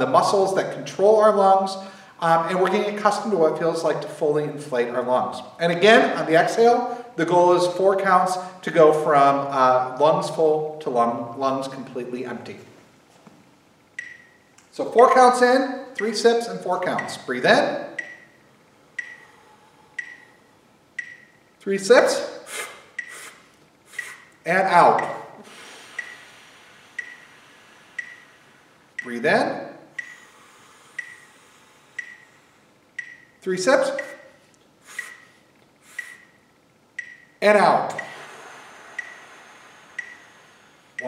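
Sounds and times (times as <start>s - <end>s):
metronome ticking with beep: 14.0s - 15.2s, 15.8s - 16.2s, 16.9s - 17.3s, 17.9s - 18.4s, 19.0s - 19.3s, 20.0s - 20.4s, 21.0s - 21.4s, 22.9s - 23.4s, 24.0s - 24.2s, 24.9s - 25.3s, 26.0s - 26.2s, 27.0s - 28.4s, 30.0s - 30.2s, 31.0s - 31.3s, 32.0s - 32.3s, 33.0s - 34.4s, 35.9s - 38.3s, 39.0s - 39.3s, 40.0s - 40.4s
person exhaling slowly: 19.1s - 20.4s, 25.4s - 28.8s, 30.0s - 32.7s, 38.0s - 41.0s.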